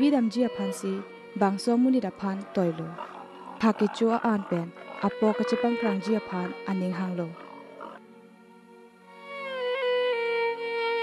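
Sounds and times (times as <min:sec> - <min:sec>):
soft background music: 0:00.0 - 0:11.0
pigs grunting and squealing: 0:02.2 - 0:08.1.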